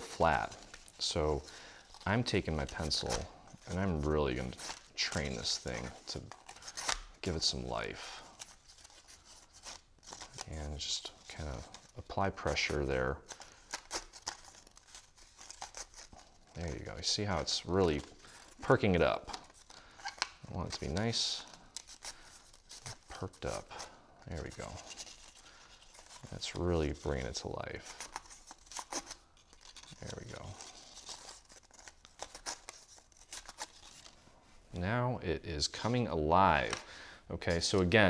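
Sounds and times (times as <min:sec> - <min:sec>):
paper crinkling and rustling: 0:00.0 - 0:34.2.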